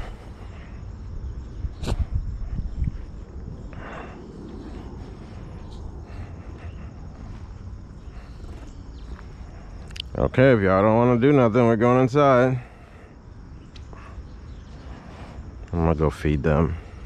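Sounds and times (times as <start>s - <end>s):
low rumble: 0.0s - 9.8s
insects chirring: 0.0s - 17.0s.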